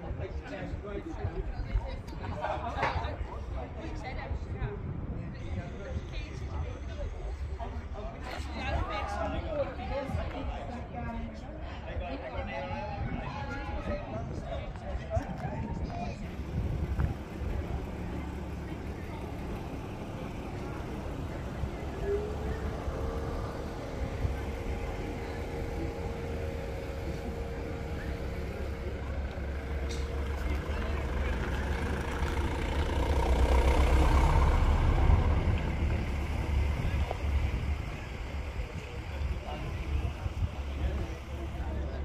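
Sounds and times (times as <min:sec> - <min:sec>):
vehicle engine rumbling: 0:11.9 - 0:42.0.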